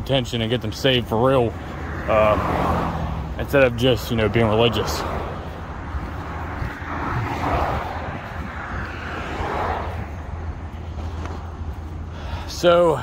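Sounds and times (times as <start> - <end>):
road traffic passing: 0.0 - 13.0.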